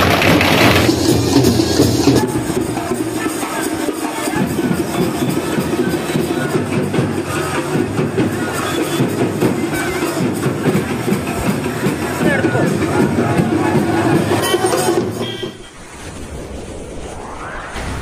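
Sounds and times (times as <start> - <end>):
large crowd shouting: 2.0 - 15.2.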